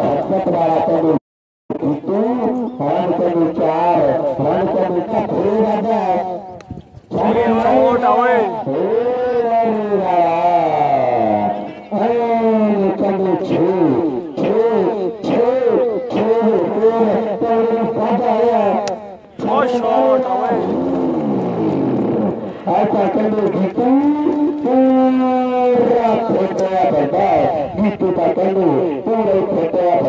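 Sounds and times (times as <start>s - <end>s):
commentator talking: 0.0s - 6.4s, 7.1s - 20.8s, 22.5s - 30.0s.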